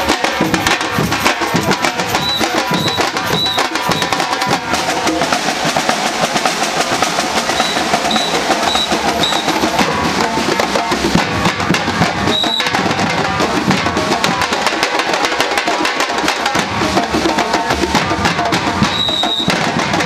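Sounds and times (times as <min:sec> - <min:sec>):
percussion band drumming: 0:00.0 - 0:20.0
short shrill tone: 0:02.1 - 0:04.2, 0:07.6 - 0:09.6.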